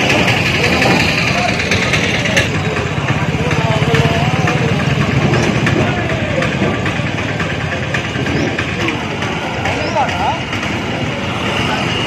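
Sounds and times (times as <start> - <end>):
engine idling: 0.0 - 12.0
people talking: 0.0 - 12.0.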